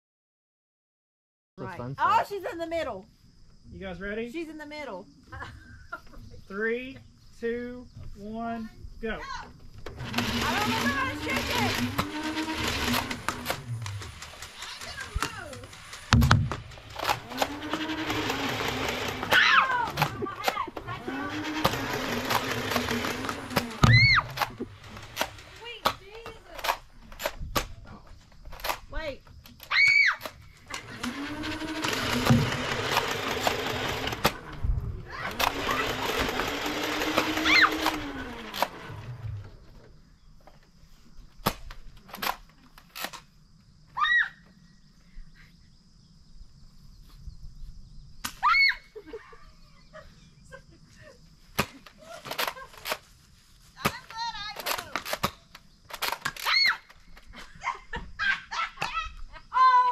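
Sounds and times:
motor hum spinning up: 0:09.8 - 0:25.8, 0:30.7 - 0:39.9
toy blasters firing bursts: 0:10.0 - 0:26.9, 0:30.2 - 0:34.5, 0:35.3 - 0:39.0
sharp knocks of hits: 0:16.1 - 0:16.8
short cries: 0:19.1 - 0:22.0, 0:37.2 - 0:38.5, 0:43.9 - 0:44.5.

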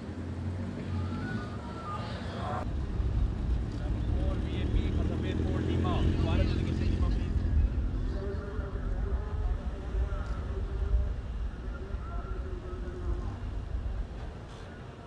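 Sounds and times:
low vehicle engine rumble: 0:00.0 - 0:15.0
police motorcycle engines: 0:00.0 - 0:15.0
voices murmuring: 0:00.7 - 0:15.0.

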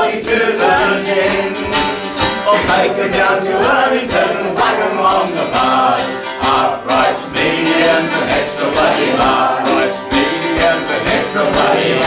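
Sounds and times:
man and woman singing: 0:00.0 - 0:12.0
mandolin: 0:00.0 - 0:12.0
strummed acoustic guitar: 0:00.0 - 0:12.0.

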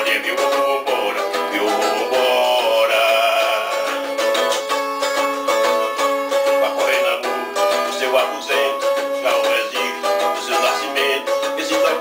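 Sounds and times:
man singing: 0:00.0 - 0:12.0
small guitar strumming: 0:00.0 - 0:12.0.

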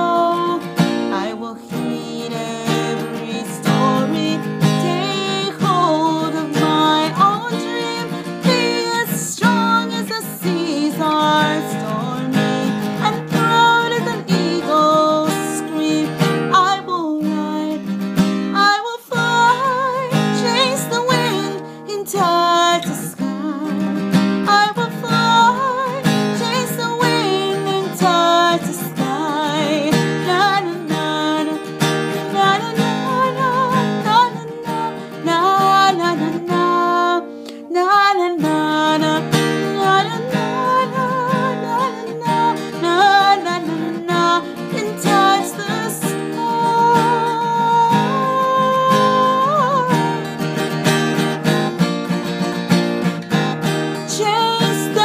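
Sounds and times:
person singing: 0:00.0 - 0:52.2, 0:53.3 - 0:55.0
acoustic guitar strumming: 0:00.0 - 0:55.0.

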